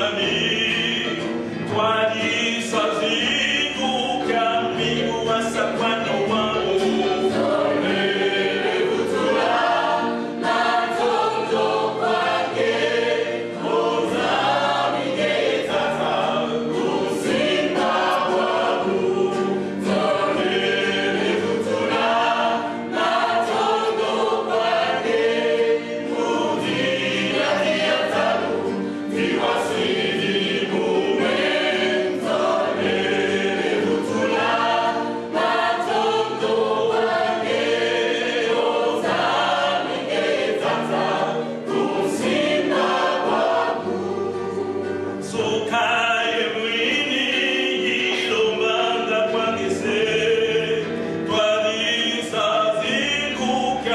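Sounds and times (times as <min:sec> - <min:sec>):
choir singing: 0:00.0 - 0:53.9.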